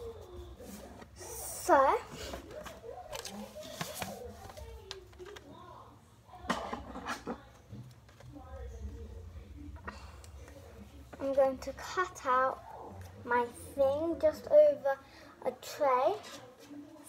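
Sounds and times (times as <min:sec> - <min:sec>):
faint background speech: 0:00.0 - 0:17.0
paper crinkling and rustling: 0:02.2 - 0:05.6.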